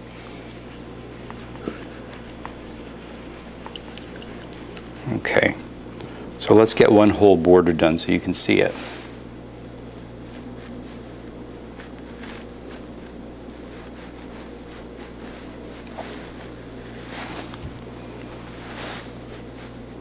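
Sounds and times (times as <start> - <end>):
faint soft rustles: 0.0 - 5.2, 8.6 - 9.3, 10.2 - 20.0
low ventilation hum: 0.0 - 20.0.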